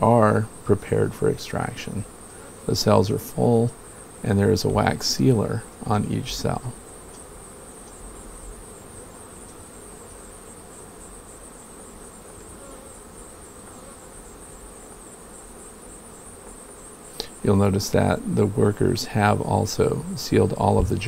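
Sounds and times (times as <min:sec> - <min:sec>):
honey bees humming: 0:00.0 - 0:21.0.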